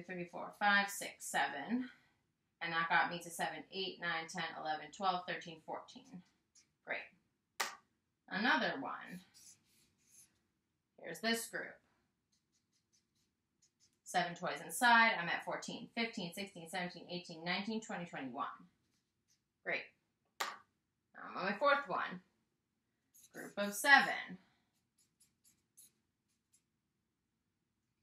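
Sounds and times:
marker strokes on paper: 0:09.0 - 0:10.4, 0:12.2 - 0:14.2, 0:23.2 - 0:26.7.

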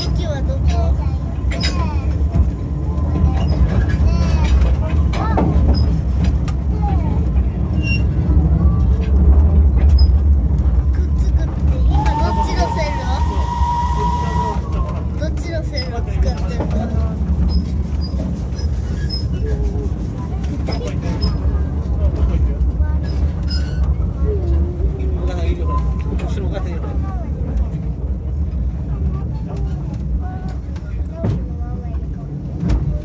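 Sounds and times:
murmur of voices: 0:00.0 - 0:33.0
train rumble: 0:00.0 - 0:33.0
wheels clicking on track: 0:00.0 - 0:33.0
steam whistle: 0:11.9 - 0:14.7.

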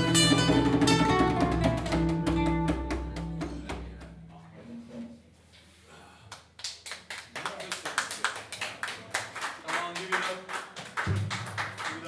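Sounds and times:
audience clapping: 0:06.3 - 0:12.0.

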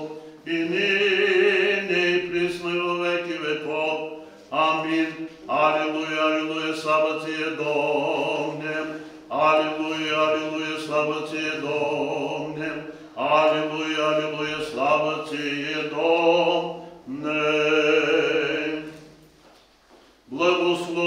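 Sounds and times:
man chanting: 0:00.0 - 0:19.1, 0:20.3 - 0:21.0.

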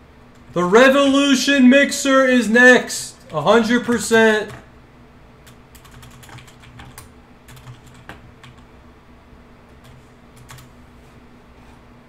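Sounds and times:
typing on computer keyboard: 0:05.4 - 0:08.7, 0:09.8 - 0:10.7.

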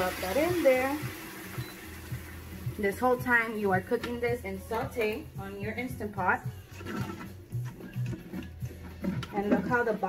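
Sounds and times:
kitchen exhaust fan humming: 0:00.0 - 0:03.6
pot cooking: 0:00.0 - 0:05.5, 0:06.2 - 0:10.0.

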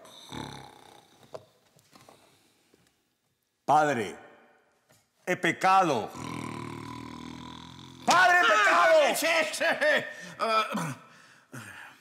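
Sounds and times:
man snoring: 0:00.0 - 0:01.2, 0:06.1 - 0:08.1.

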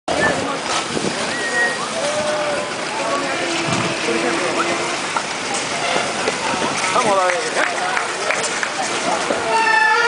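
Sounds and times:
people talking: 0:00.1 - 0:10.0
roller-skate wheels on pavement: 0:00.1 - 0:10.0.

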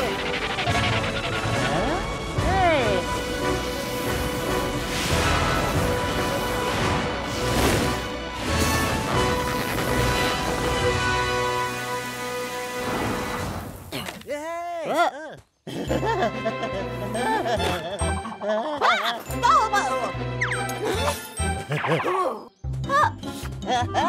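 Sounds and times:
cartoon background music: 0:00.0 - 0:13.4, 0:15.7 - 0:24.0.

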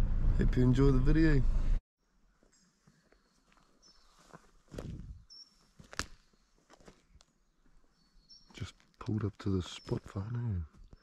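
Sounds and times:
footsteps on crackling undergrowth: 0:02.3 - 0:11.0.

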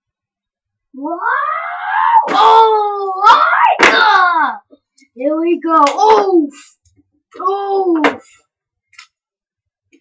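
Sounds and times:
child shouting wow: 0:01.0 - 0:04.6.

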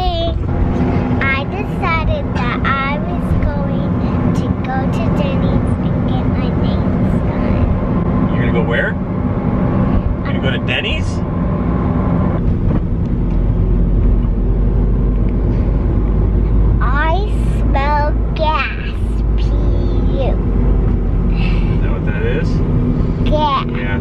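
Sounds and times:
child's voice: 0:00.0 - 0:00.4, 0:01.2 - 0:07.8, 0:16.8 - 0:20.4, 0:23.2 - 0:24.0
car cabin road and engine rumble: 0:00.0 - 0:24.0.

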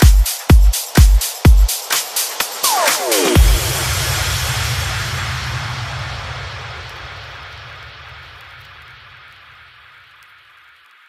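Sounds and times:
synthesized noise wash: 0:00.0 - 0:10.9
low rumble: 0:03.4 - 0:10.4.

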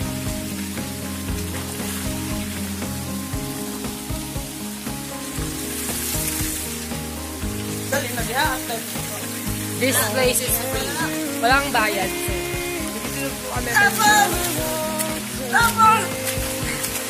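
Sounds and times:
background music: 0:00.0 - 0:17.0
waterfall splashing into pool: 0:00.0 - 0:17.0.

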